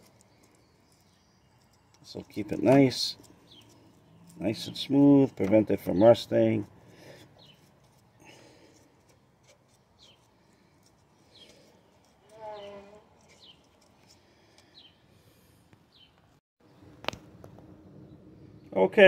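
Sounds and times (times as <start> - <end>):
bird chirps: 0.1 - 6.3.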